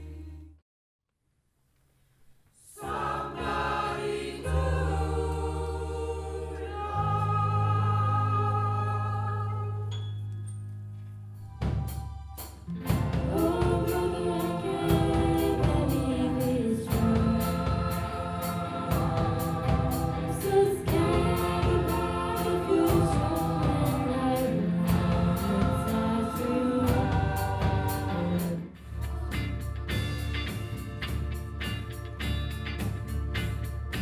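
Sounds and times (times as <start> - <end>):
choir singing: 2.6 - 9.9, 12.4 - 31.2
rock band playing: 11.6 - 24.0, 24.6 - 34.0
lead singer: 12.9 - 30.0.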